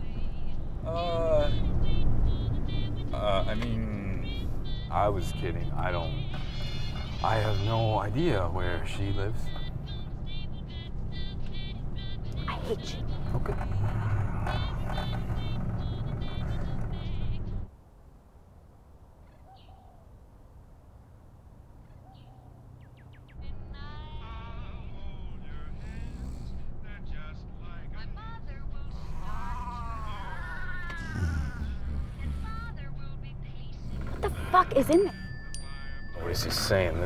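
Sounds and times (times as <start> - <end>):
car driving drone from inside: 0.0 - 6.3, 8.1 - 17.7
quiet outdoor air: 0.0 - 37.0
high wavering squeaks: 1.0 - 17.7, 33.7 - 37.0.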